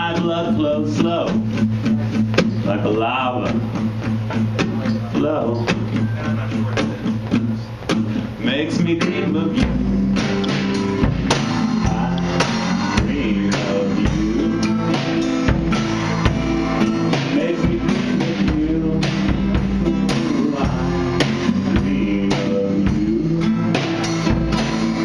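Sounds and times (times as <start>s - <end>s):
drum kit beat on snare and cymbal: 0.0s - 25.0s
electric guitar playing: 0.0s - 25.0s
bass drum kicks: 9.5s - 25.0s.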